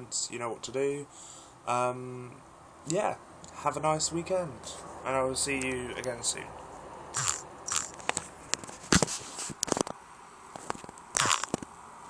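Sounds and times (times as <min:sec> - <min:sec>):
camera handling rustles and scrapes: 0:07.7 - 0:11.7.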